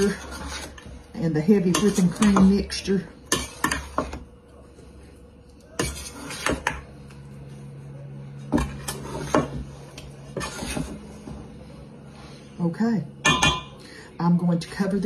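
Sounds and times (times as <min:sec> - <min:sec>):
spoon scraping metal bowl: 0:00.0 - 0:04.2, 0:05.8 - 0:06.8, 0:10.2 - 0:11.1
low steady hum: 0:00.0 - 0:15.0.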